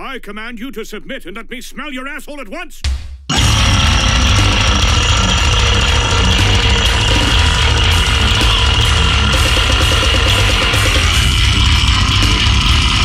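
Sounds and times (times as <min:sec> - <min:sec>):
fast dense drumming: 0:02.8 - 0:13.0
distorted guitars and bass: 0:02.9 - 0:13.0.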